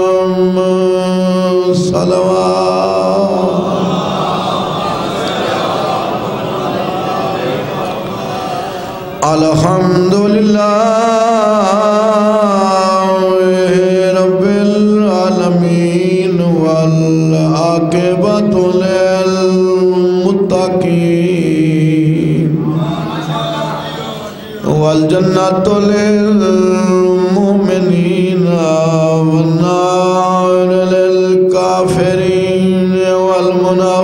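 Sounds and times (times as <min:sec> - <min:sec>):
man chanting: 0:00.0 - 0:34.0.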